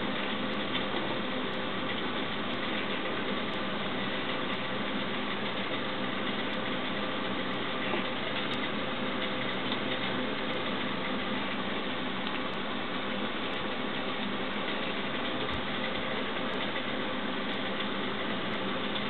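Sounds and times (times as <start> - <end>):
mechanical hum and hiss: 0.0 - 19.0.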